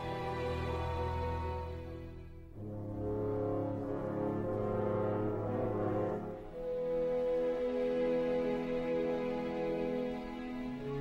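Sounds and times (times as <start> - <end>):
sustained brass chords: 0.0 - 8.2.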